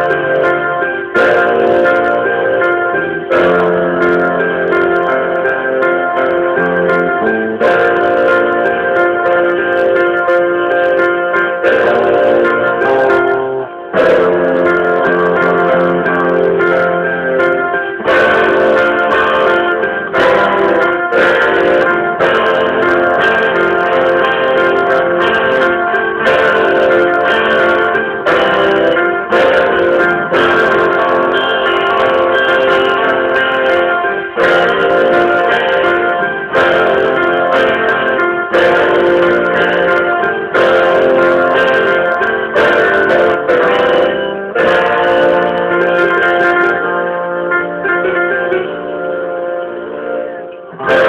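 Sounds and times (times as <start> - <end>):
piano and guitar ballad: 0.0 - 51.0.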